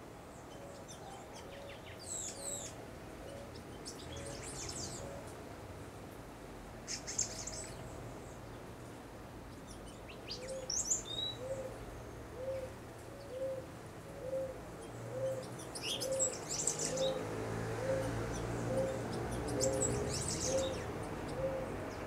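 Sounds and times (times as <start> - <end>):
bird hooting low notes: 11.3 - 11.8, 12.4 - 17.2, 17.8 - 21.8.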